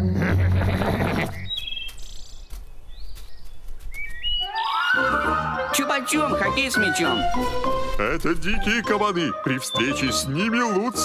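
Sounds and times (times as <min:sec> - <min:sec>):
cartoon music: 0:04.4 - 0:11.0.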